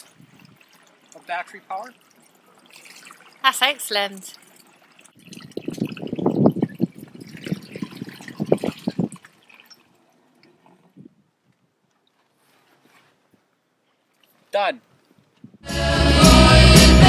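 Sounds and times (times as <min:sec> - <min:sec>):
water glugging from jug: 0:00.0 - 0:11.1.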